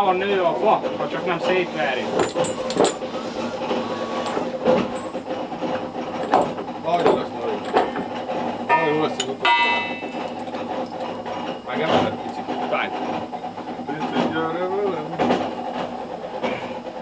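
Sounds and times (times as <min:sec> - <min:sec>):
short squeal: 0:03.1 - 0:04.4
wooden beams knocking: 0:04.3 - 0:08.2.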